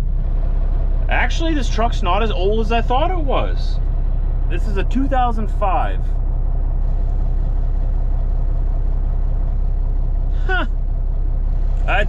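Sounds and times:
diesel truck engine idling: 0.0s - 12.0s.

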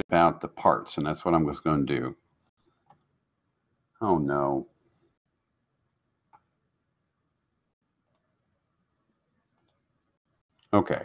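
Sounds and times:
computer mouse click: 8.0s - 8.3s, 9.6s - 9.8s
spoken word: 10.8s - 11.0s.

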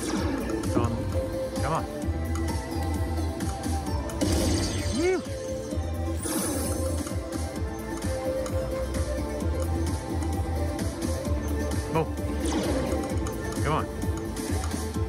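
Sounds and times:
slot machine music and effects: 0.0s - 15.0s.

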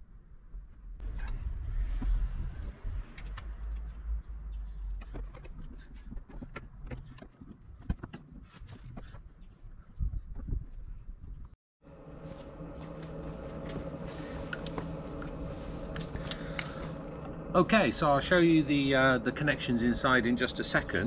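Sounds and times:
low rumble: 0.4s - 5.2s, 11.4s - 21.0s.

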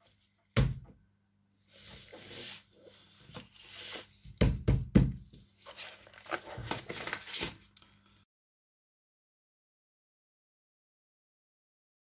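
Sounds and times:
paper rustling: 1.7s - 4.2s, 5.4s - 7.8s.

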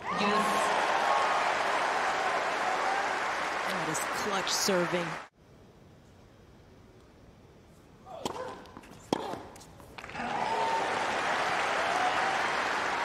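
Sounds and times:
crowd applause and cheering: 0.0s - 5.3s, 10.0s - 13.0s
racket hitting tennis ball: 8.1s - 10.0s.

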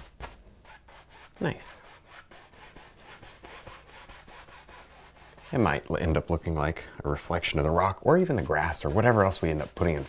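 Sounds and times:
paintbrush brushing on canvas: 0.0s - 6.4s, 7.4s - 10.0s.

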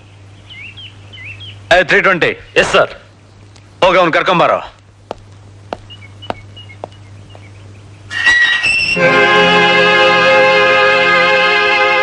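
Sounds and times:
faint bird chirps: 5.8s - 9.0s.

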